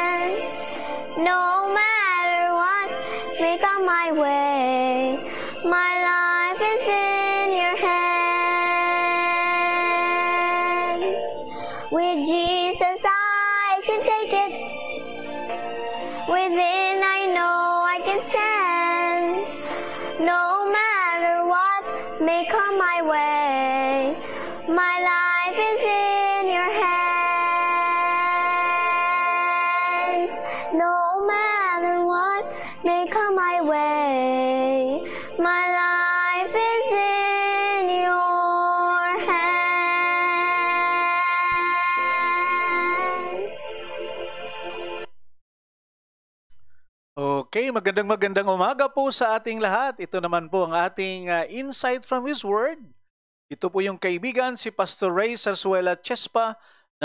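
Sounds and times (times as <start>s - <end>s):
girl singing gospel song: 0.0s - 0.5s, 1.1s - 14.6s, 16.2s - 44.0s
girl breathing in: 5.2s - 5.6s, 11.4s - 12.0s, 24.2s - 24.6s, 30.4s - 30.8s, 32.4s - 32.8s, 35.0s - 35.4s, 56.6s - 56.9s.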